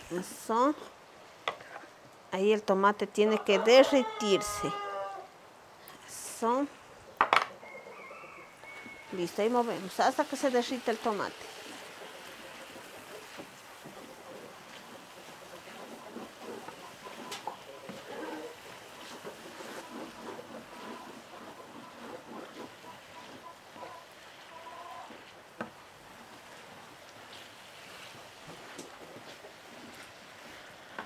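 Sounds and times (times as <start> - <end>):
wooden spoon scraping clay pot: 0.0 - 2.0, 8.4 - 31.0
vegetables sizzling in a pan: 8.6 - 31.0.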